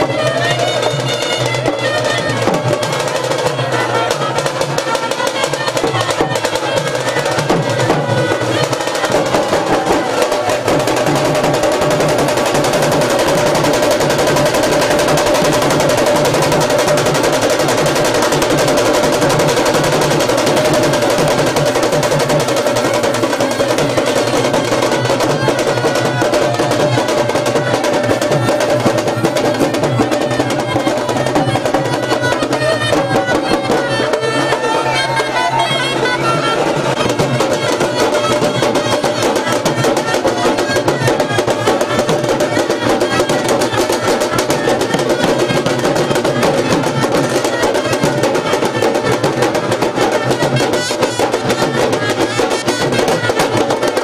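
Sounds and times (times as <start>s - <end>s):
snare drums rolling: 0.0s - 54.0s.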